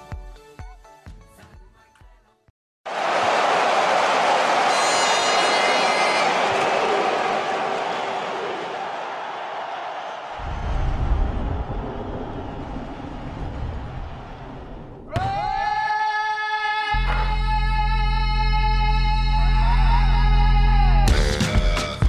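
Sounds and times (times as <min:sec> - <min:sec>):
football match din: 0:02.9 - 0:16.2
low rumble: 0:10.4 - 0:15.1.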